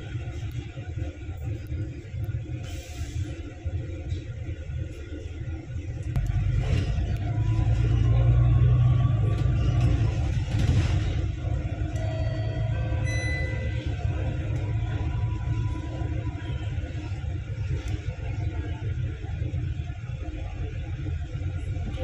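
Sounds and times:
bus engine and road rumble: 0.0s - 22.0s.

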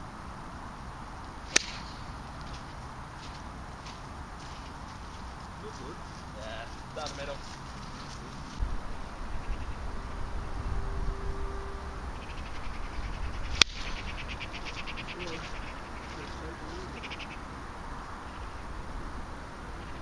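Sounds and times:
golf club striking ball: 1.5s - 2.5s, 13.5s - 14.8s
rapid chirping trills: 4.0s - 18.7s.

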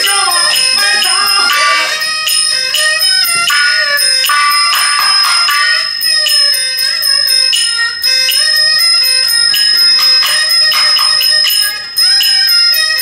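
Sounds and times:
struck brass percussion ringing: 0.0s - 6.3s
traditional instruments melody: 0.0s - 13.0s.

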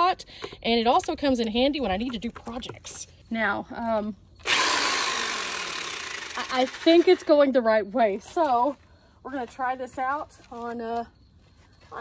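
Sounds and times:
electric drill whirring: 4.4s - 7.2s.

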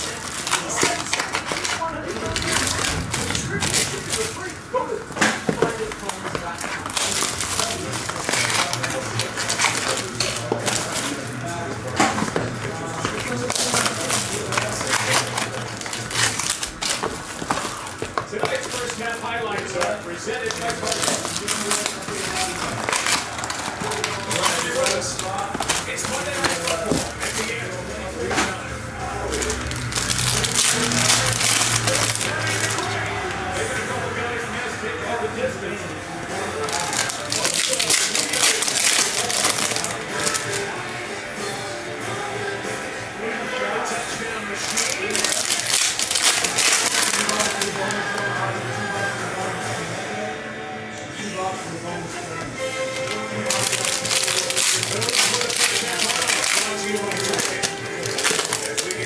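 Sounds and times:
plastic wrapping crinkling and tearing: 0.0s - 33.8s, 36.4s - 40.9s, 43.6s - 49.0s, 52.6s - 59.0s
music: 0.0s - 59.0s
voices: 0.0s - 59.0s.

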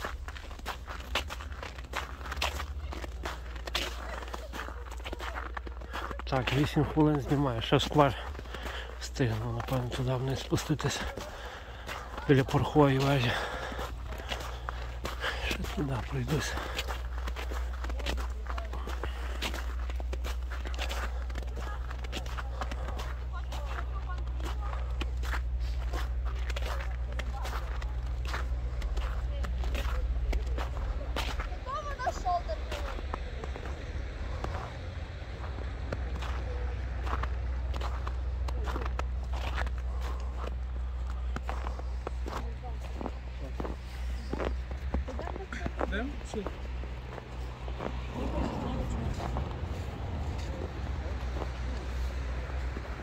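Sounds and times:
footsteps crunching on snow: 0.0s - 53.0s
steady low rumble: 0.0s - 53.0s.

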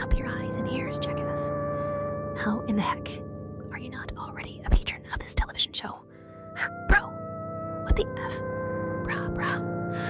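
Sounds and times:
droning music: 0.0s - 10.0s.

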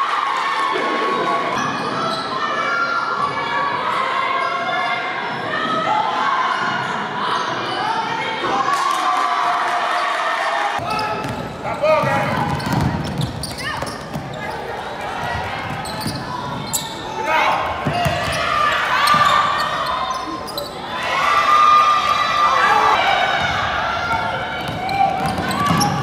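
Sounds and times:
people calling and shouting: 0.0s - 26.0s
basketball bouncing on hardwood: 12.0s - 14.3s.

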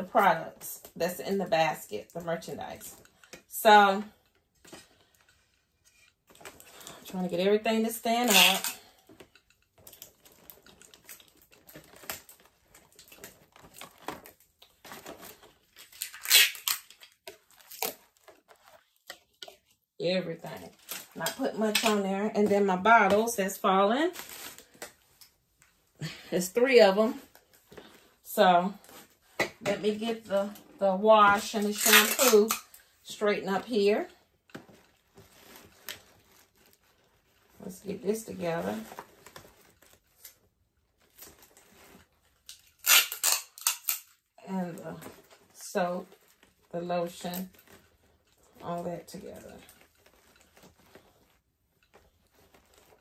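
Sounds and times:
tape crackling on plastic packaging: 0.0s - 53.0s
faint rustling: 32.3s - 42.5s, 44.6s - 53.0s.

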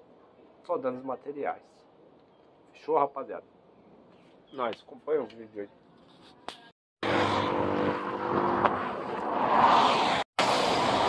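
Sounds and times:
passing traffic: 7.0s - 11.0s.

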